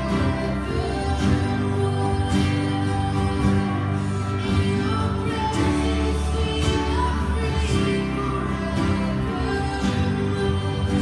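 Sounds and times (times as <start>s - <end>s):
acoustic guitar chords: 0.0s - 11.0s
bass: 0.0s - 11.0s.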